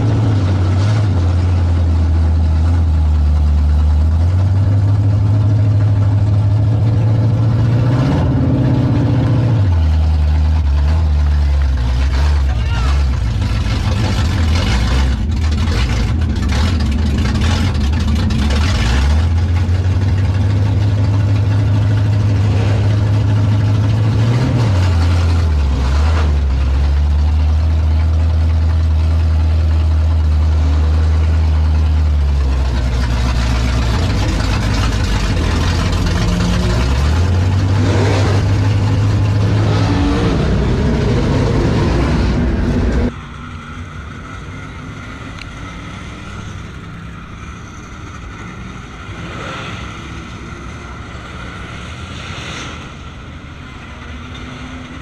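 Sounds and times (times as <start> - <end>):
race car engine idling: 0.0 - 7.9, 8.7 - 24.2, 26.4 - 39.6.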